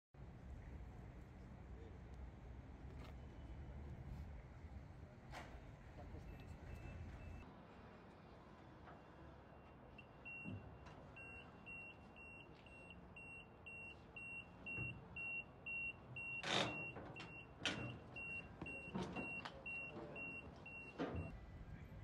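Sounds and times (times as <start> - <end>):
forklift warning beeper: 5.9 - 7.4, 11.2 - 21.4.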